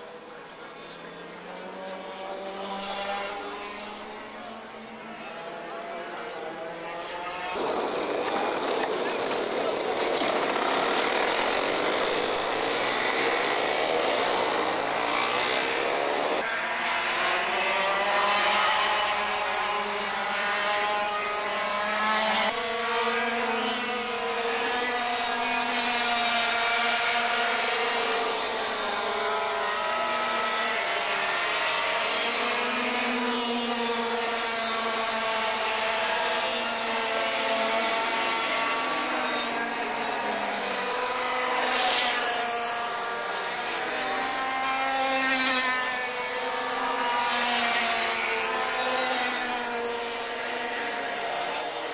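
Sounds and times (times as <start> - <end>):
racing kart engines: 0.0 - 51.9.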